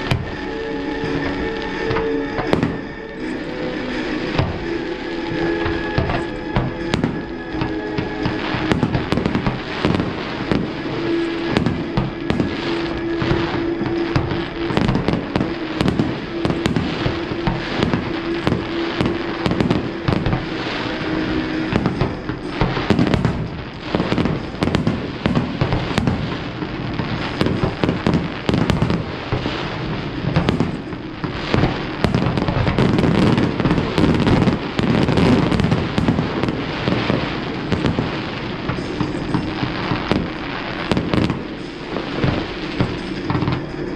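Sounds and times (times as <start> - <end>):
fireworks bursts and crackling: 0.0 - 43.9
steady low tone: 0.0 - 43.9.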